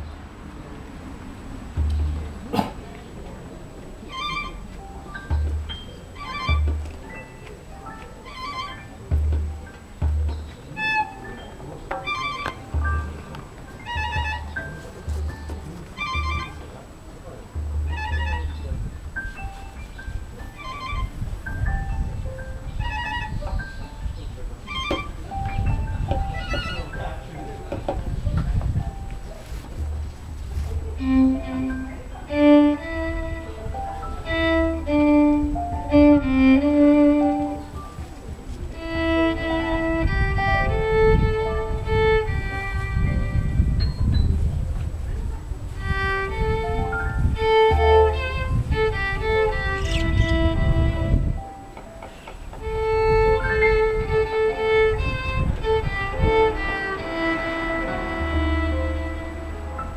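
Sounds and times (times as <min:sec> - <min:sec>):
wind buffeting microphone: 0:00.0 - 0:59.9
low rumble: 0:01.0 - 0:02.9, 0:38.0 - 0:51.3.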